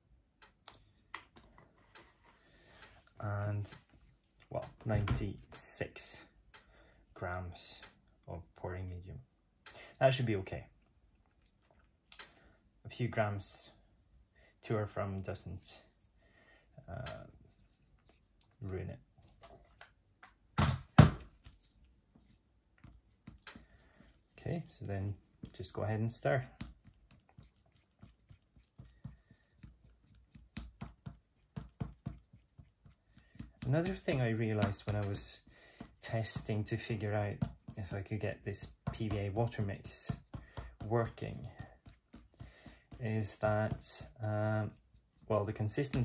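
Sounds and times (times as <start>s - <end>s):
stick tapping and scraping plastic cup: 22.8s - 46.0s.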